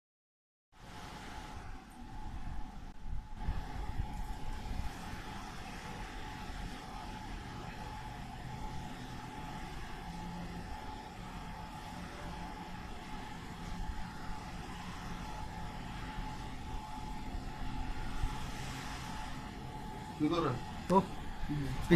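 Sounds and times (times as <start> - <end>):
faint hum: 0.8 - 21.9
wind rumbling on microphone: 0.9 - 7.0.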